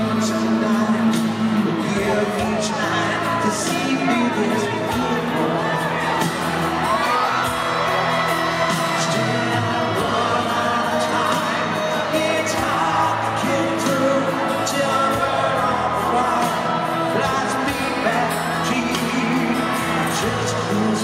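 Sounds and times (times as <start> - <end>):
crowd noise: 0.0 - 21.0
live rock ballad: 0.0 - 21.0
person singing: 0.0 - 21.0.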